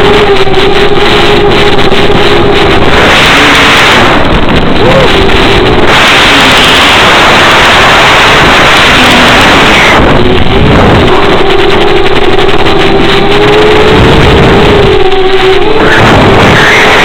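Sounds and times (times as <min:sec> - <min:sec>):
model plane electric motor humming: 0:00.0 - 0:17.0
wind rushing: 0:00.0 - 0:17.0.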